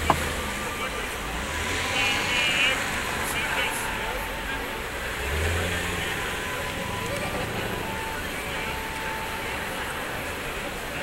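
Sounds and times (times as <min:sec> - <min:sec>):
road traffic: 0:00.0 - 0:11.0
voices of passers-by: 0:00.0 - 0:11.0.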